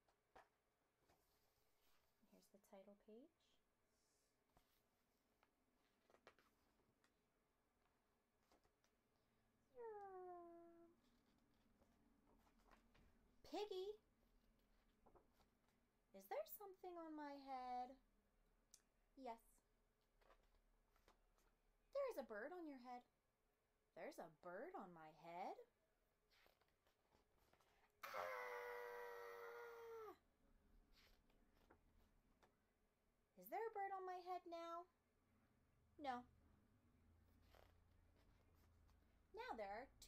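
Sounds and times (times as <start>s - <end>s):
animal call sliding down in pitch: 28.0s - 30.2s
woman screaming: 28.0s - 30.2s.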